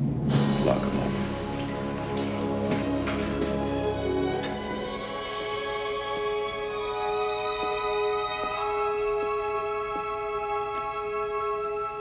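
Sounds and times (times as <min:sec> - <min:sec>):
slow film score music: 0:00.0 - 0:12.0.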